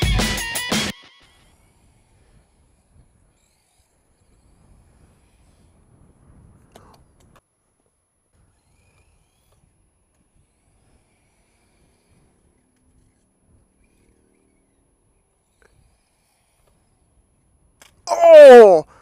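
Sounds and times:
faint ticks: 0:06.6 - 0:14.7, 0:15.3 - 0:17.0.

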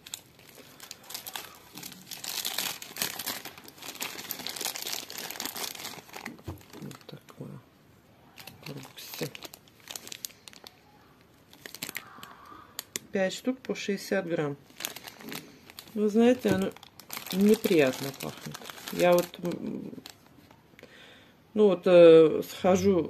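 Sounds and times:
plastic wrapping crinkling: 0:00.0 - 0:07.6, 0:08.3 - 0:13.2, 0:14.6 - 0:20.6.

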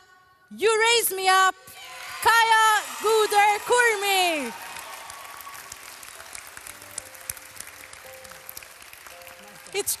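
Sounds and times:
audience clapping: 0:01.9 - 0:10.0
quiet music: 0:05.4 - 0:10.0.

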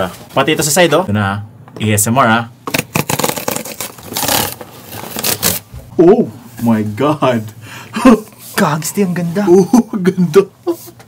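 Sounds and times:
cardboard tear strip ripping: 0:02.7 - 0:05.7.

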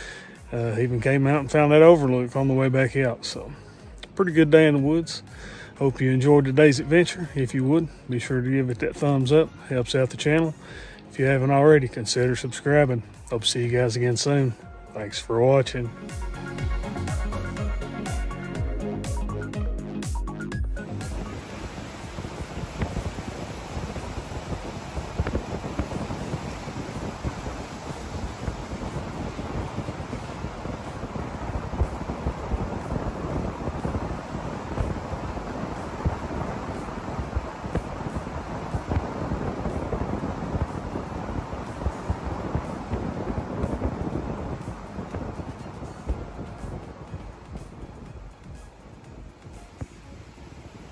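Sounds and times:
vehicle road and wind noise: 0:20.8 - 0:50.9.

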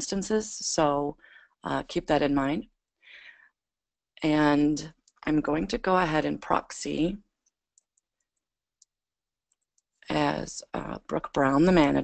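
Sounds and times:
keyboard and mouse clicks: 0:07.4 - 0:10.0.

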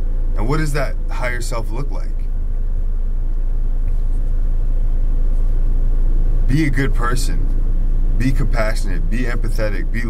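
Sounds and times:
car rumble from inside cabin: 0:00.0 - 0:10.0.

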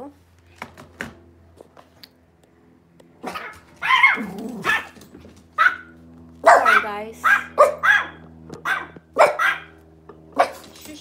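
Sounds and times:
dog barking: 0:03.2 - 0:05.0, 0:05.6 - 0:09.7, 0:10.4 - 0:10.7.

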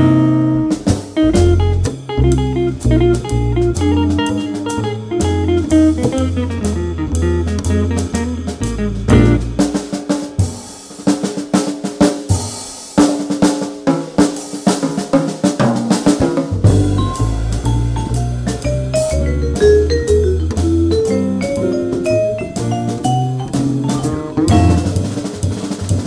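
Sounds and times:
walking double bass: 0:00.0 - 0:09.9, 0:16.5 - 0:26.0
drum kit solo: 0:00.0 - 0:26.0
jazz band playing: 0:00.0 - 0:26.0.

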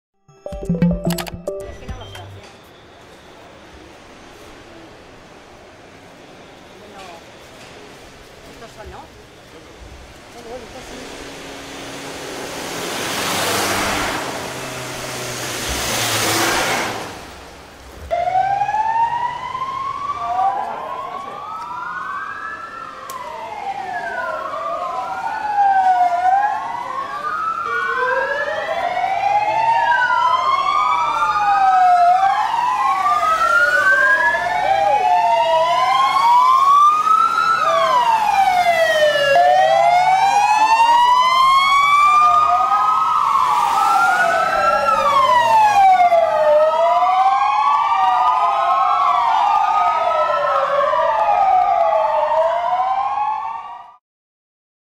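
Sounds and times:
police sirens wailing: 0:18.1 - 0:54.0.

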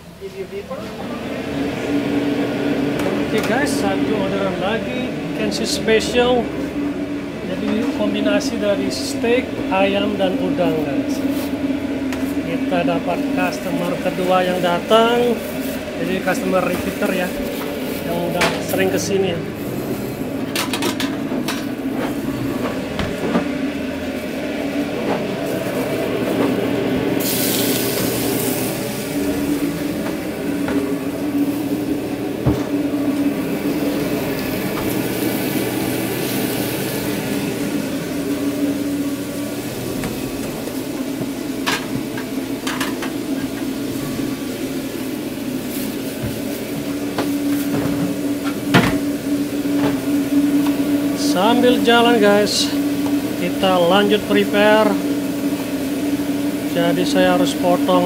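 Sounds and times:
ventilation drone: 0:00.0 - 0:58.0
food hissing on griddle: 0:27.2 - 0:29.5.

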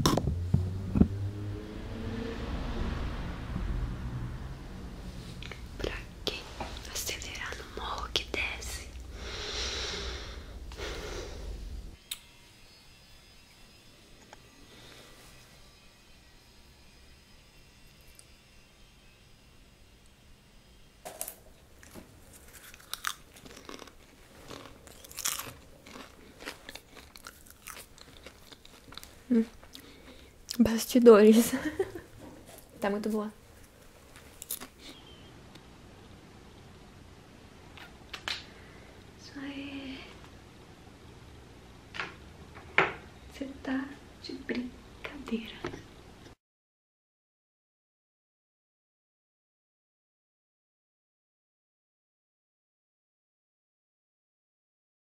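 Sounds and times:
faint room hiss: 0:01.8 - 0:13.0, 0:19.9 - 0:46.4
close whispering: 0:05.8 - 0:09.0.

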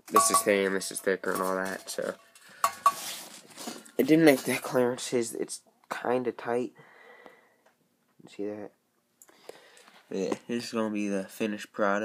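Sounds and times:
rustling handling noise: 0:00.0 - 0:04.8
light metallic clinks: 0:00.1 - 0:01.1.

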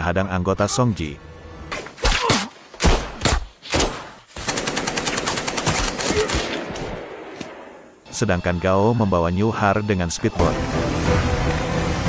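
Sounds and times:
automatic gunfire: 0:04.4 - 0:06.8.

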